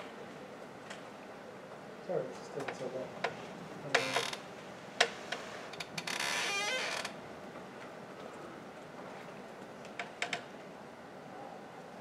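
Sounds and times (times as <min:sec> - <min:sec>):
creak rising in pitch: 0:03.9 - 0:04.4, 0:05.7 - 0:07.2.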